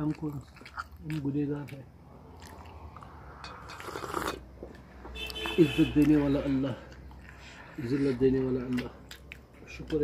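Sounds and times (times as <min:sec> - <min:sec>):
mouth sounds of eating: 0:00.0 - 0:04.6, 0:05.4 - 0:10.0
sipping tea: 0:02.5 - 0:04.5
man speaking: 0:07.8 - 0:09.0.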